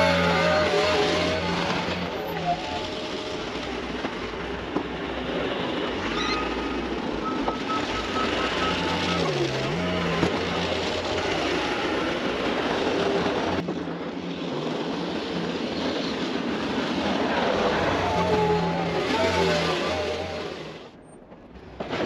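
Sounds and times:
diesel engine under load: 0.0s - 21.8s
high beeps: 6.1s - 10.2s.

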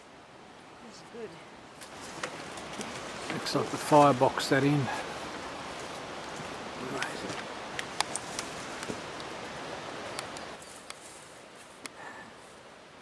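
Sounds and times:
wet forest hiss: 0.0s - 13.0s.

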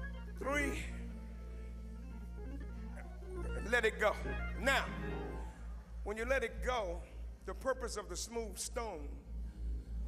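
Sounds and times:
church organ chord: 0.0s - 9.9s.

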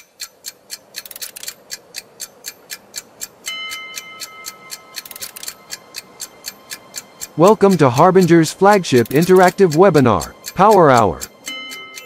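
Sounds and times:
clock-like ticking: 0.0s - 12.0s
high held tone: 3.4s - 12.0s.

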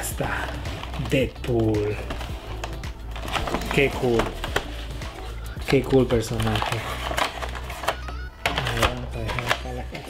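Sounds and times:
cardboard and plastic packaging handled: 0.0s - 10.0s.

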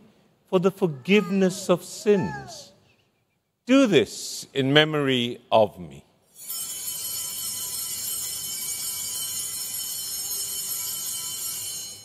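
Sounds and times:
altar bells jingling: 6.3s - 12.0s.

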